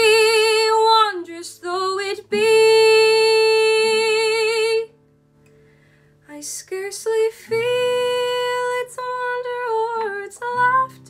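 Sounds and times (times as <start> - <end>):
soft acoustic guitar: 0.0 - 11.0.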